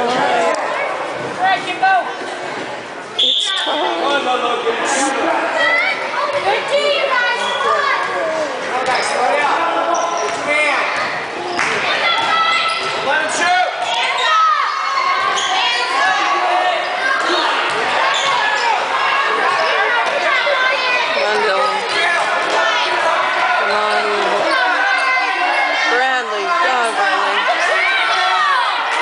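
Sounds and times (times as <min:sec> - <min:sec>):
echoing voices: 0:00.0 - 0:02.6, 0:18.6 - 0:29.0.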